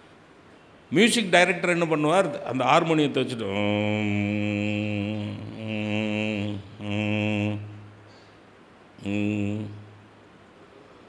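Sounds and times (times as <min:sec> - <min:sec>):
man humming long notes: 0:03.8 - 0:08.0, 0:09.0 - 0:10.0.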